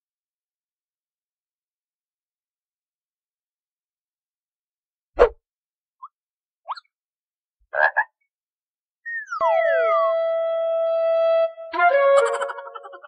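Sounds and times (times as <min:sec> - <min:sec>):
held musical note: 0:09.4 - 0:13.0.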